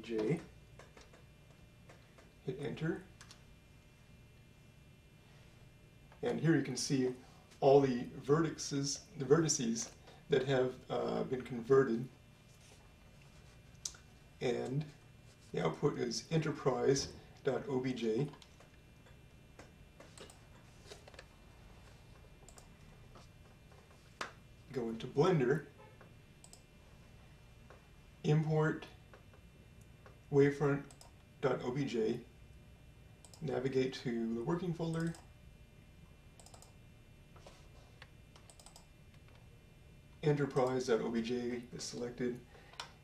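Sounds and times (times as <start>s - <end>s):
computer clicks: 0.2s - 1.3s, 3.2s - 3.4s, 18.3s - 20.4s, 22.4s - 22.8s, 26.4s - 26.7s, 30.8s - 31.2s, 33.2s - 33.5s, 34.9s - 35.3s, 36.4s - 36.8s, 38.3s - 39.4s
faint mouse clicks: 35.0s - 35.3s, 36.4s - 36.8s, 38.0s - 39.4s.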